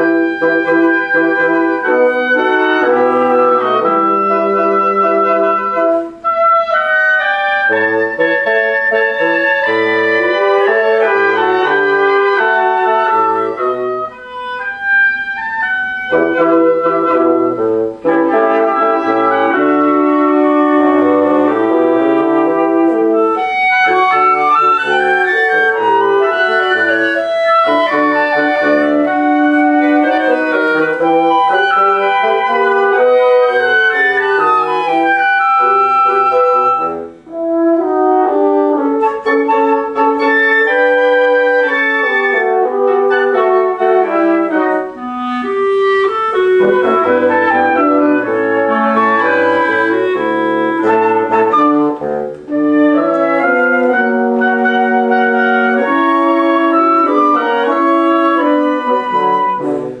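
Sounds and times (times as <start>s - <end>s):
bassoon: 0.0s - 60.0s
clarinet: 0.0s - 60.0s
flute: 0.0s - 60.0s
french horn: 0.0s - 60.0s.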